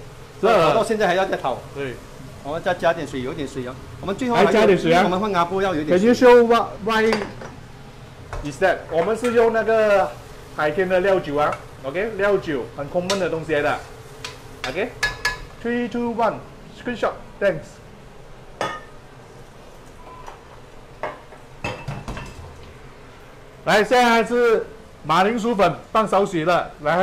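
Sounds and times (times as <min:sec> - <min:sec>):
person speaking: 0:02.5 - 0:07.2
kitchenware clink: 0:18.6 - 0:19.0, 0:21.0 - 0:22.5.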